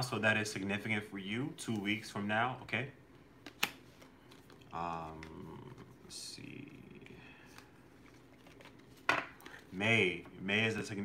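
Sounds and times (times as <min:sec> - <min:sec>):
man speaking: 0:00.0 - 0:03.0, 0:04.7 - 0:07.3, 0:09.7 - 0:11.0.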